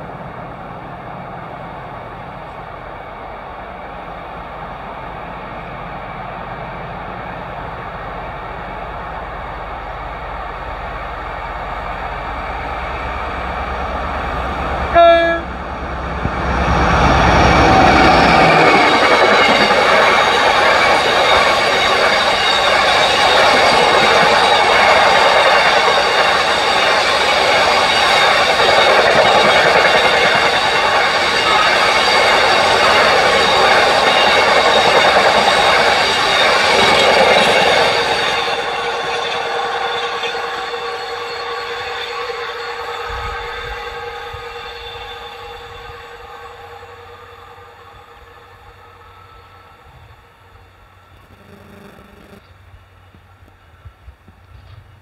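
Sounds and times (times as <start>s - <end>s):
freight train rumbling past: 0.0s - 51.2s
high ringing tones from wheels: 17.3s - 52.4s.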